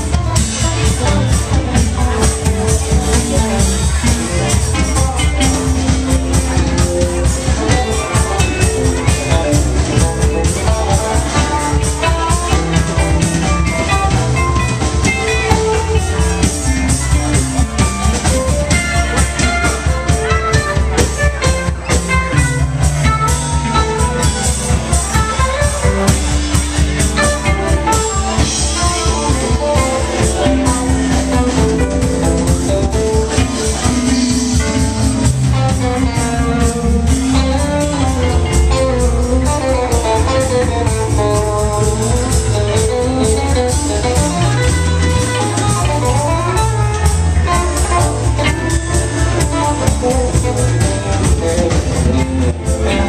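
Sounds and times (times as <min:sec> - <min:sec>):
bass guitar: 0:00.0 - 0:53.0
drums: 0:00.0 - 0:53.0
electric guitars: 0:00.0 - 0:53.0
live rock band jamming: 0:00.0 - 0:53.0.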